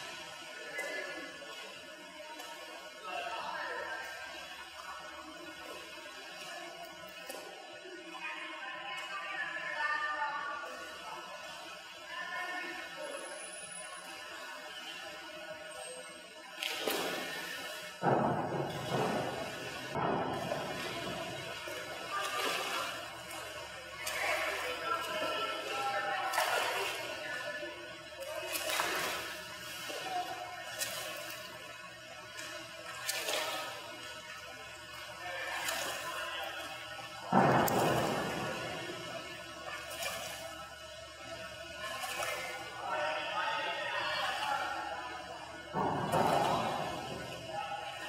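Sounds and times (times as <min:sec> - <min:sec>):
distant voices: 0:00.0 - 0:48.0
water splashing from swimming: 0:00.0 - 0:48.0.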